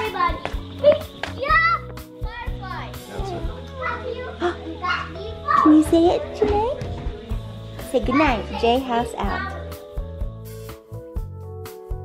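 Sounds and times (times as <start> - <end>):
children calling out: 0.0 - 6.0
background music: 0.0 - 12.0.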